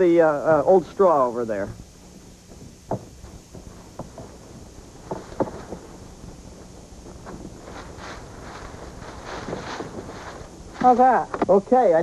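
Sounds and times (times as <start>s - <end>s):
dry straw rustling and crackling: 0.0s - 12.0s
short knocks: 2.4s - 5.9s.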